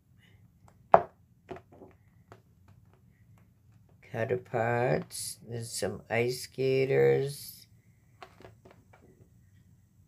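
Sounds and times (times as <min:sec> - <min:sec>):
knock on wooden table: 0:01.0 - 0:01.9.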